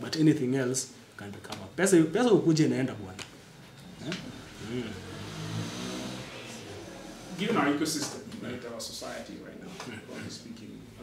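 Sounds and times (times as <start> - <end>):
vehicle engine accelerating: 3.9 - 7.8.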